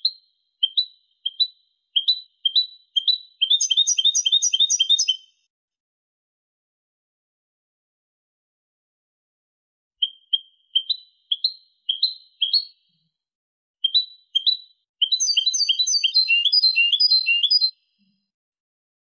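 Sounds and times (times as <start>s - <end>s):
goldfinch singing: 0.0s - 5.3s, 10.0s - 12.9s, 13.8s - 17.7s.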